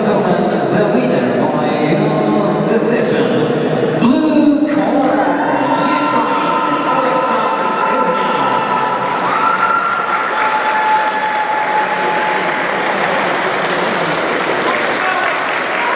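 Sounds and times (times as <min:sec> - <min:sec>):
crowd applauding: 0:05.5 - 0:15.9.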